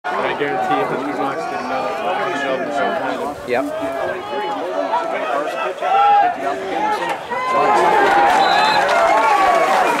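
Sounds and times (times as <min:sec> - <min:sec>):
crowd shouting and cheering: 0:00.1 - 0:10.0.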